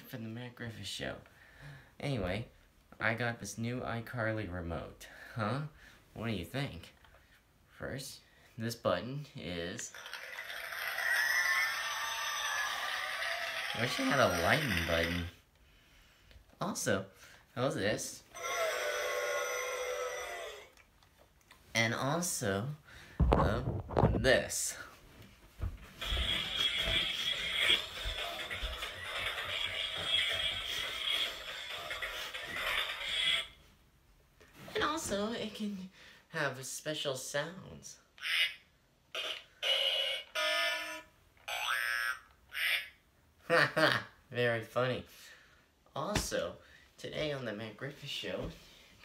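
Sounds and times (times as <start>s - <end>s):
toy remote sound effect: 9.9s - 15.3s, 18.4s - 20.7s, 26.0s - 33.6s, 38.2s - 43.0s.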